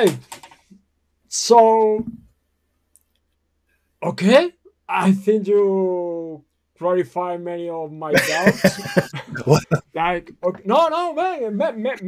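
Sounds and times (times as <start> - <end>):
person speaking: 0.0 - 0.5, 1.3 - 2.2, 8.1 - 12.0
faint small clicks: 2.9 - 3.4.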